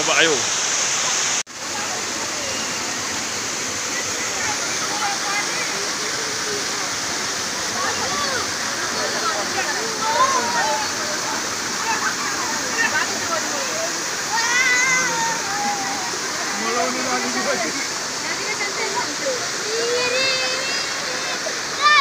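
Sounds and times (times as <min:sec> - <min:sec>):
waterfall rushing: 0:00.0 - 0:22.0
people talking and calling: 0:01.6 - 0:22.0.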